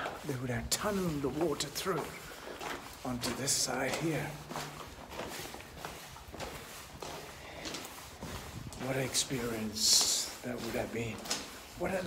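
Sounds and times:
footsteps on stone floor: 0.0s - 12.0s.

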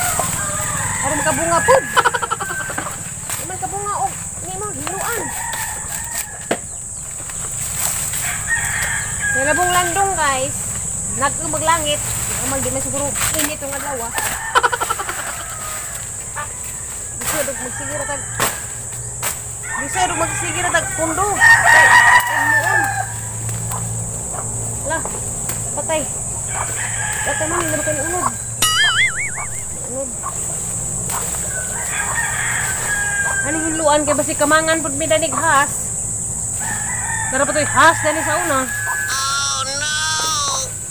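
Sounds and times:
rooster crowing: 0.0s - 3.2s, 4.8s - 6.5s, 8.1s - 10.0s, 14.0s - 18.9s, 19.6s - 23.5s, 26.4s - 30.0s, 31.4s - 34.1s, 36.5s - 40.9s
high-pitched insect drone: 0.0s - 40.9s.

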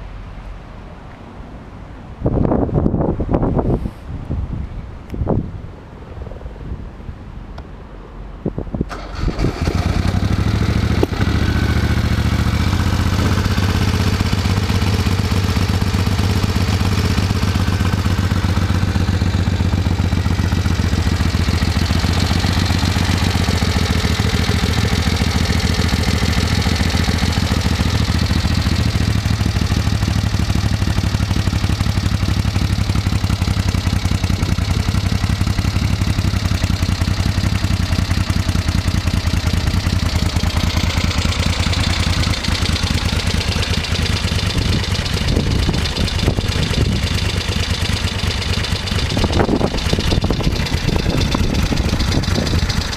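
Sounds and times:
motorcycle engine idling: 8.9s - 52.9s.

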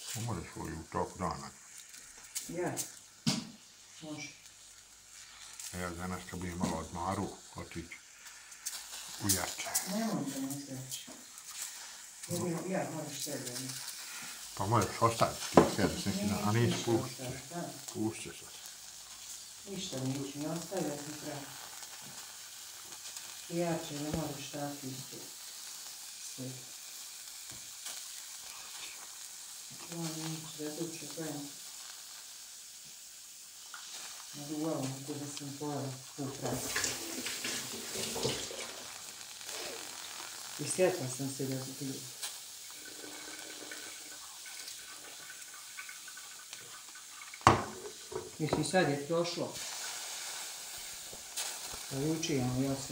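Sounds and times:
mushrooms sizzling on foil: 0.0s - 52.9s
sharp knock: 3.2s - 3.6s, 47.5s - 48.3s
person speaking: 5.7s - 8.0s, 9.2s - 11.1s, 48.2s - 49.6s, 51.9s - 52.9s.

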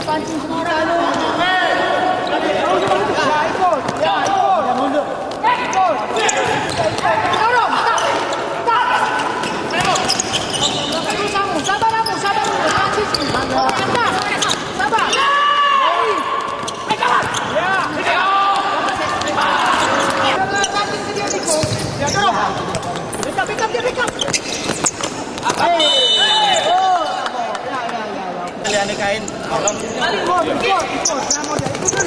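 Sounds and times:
shoes squeaking on sports floor: 2.1s - 26.8s, 28.6s - 32.0s
ball kicked and bouncing: 21.5s - 22.0s, 31.4s - 32.0s.

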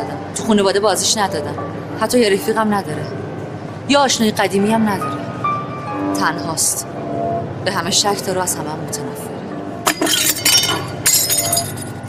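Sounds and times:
glass cracking: 9.9s - 12.0s
glass shards tinkling: 9.9s - 12.0s.

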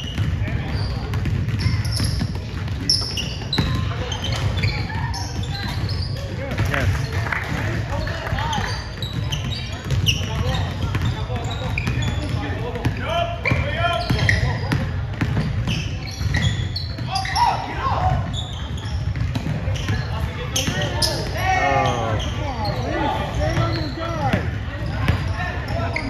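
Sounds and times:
basketball bouncing on wooden floor: 0.0s - 5.9s, 8.5s - 17.1s, 18.1s - 20.0s
people talking and calling out: 0.0s - 26.0s.

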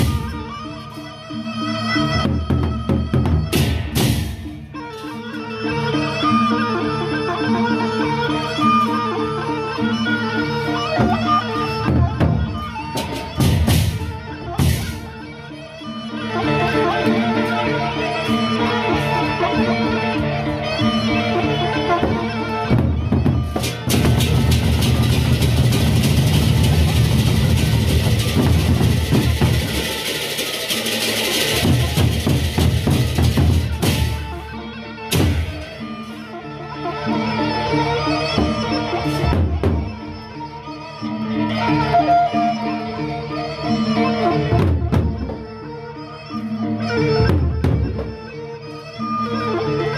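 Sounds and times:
barrel drums beaten with sticks: 22.7s - 29.9s, 31.5s - 34.3s, 35.1s - 35.7s.

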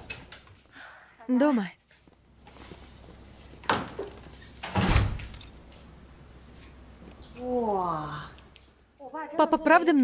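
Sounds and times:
door thud: 4.7s - 5.3s.

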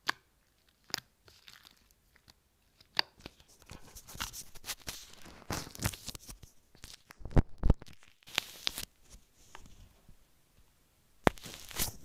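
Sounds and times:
slime crackling and squelching: 0.0s - 9.0s, 11.2s - 12.0s.

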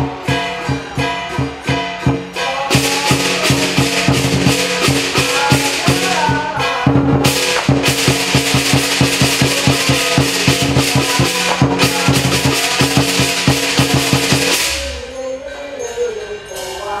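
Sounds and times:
drum beaten in fast rhythm: 0.0s - 15.1s
crashing cymbals: 0.0s - 15.5s.

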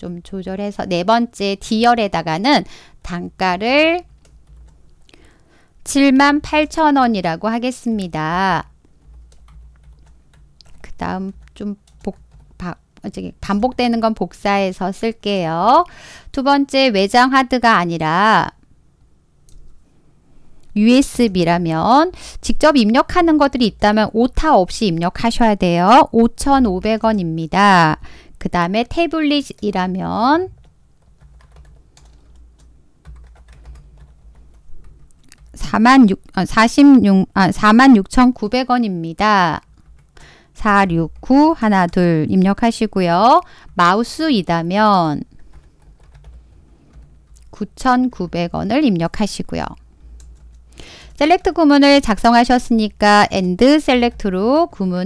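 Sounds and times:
low steady hum: 0.0s - 55.0s
keyboard typing: 3.6s - 5.2s, 8.3s - 12.8s, 29.4s - 35.6s, 39.6s - 40.3s, 40.9s - 42.1s, 45.2s - 47.7s, 49.6s - 51.6s
keyboard keys clicking: 8.9s - 12.5s, 30.6s - 34.2s, 45.4s - 47.5s.

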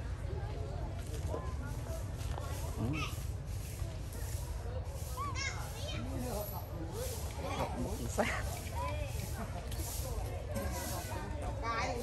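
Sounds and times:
faint human voices: 0.0s - 12.0s.

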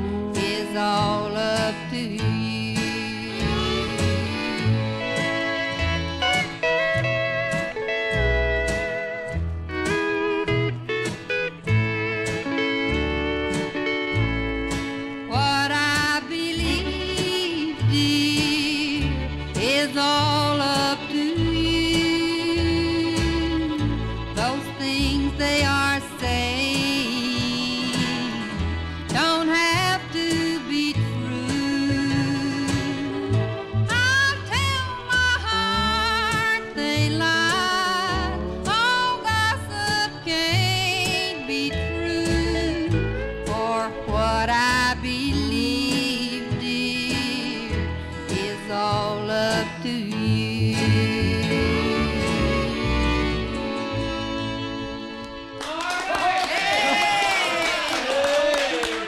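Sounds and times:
steel guitar sliding notes: 0.0s - 55.6s
country band music: 0.0s - 59.0s.

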